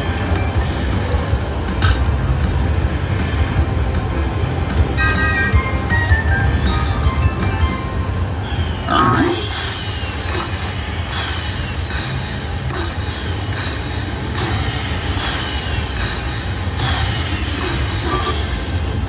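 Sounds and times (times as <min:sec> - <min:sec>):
slot machine burst: 0:04.3 - 0:18.9.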